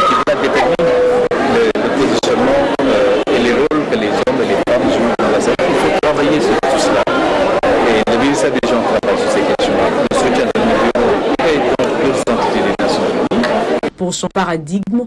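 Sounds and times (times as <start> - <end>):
man speaking: 0.1 - 7.2, 7.8 - 13.6.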